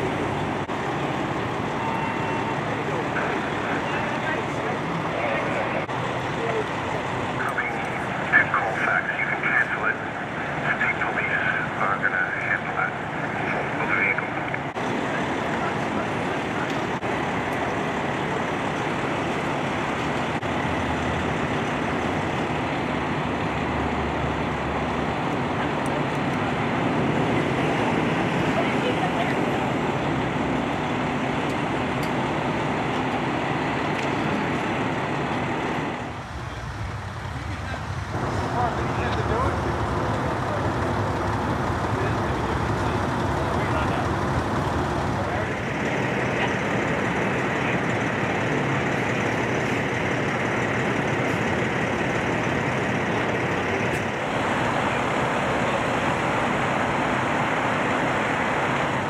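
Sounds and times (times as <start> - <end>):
highway traffic rushing past: 0.0 - 59.0.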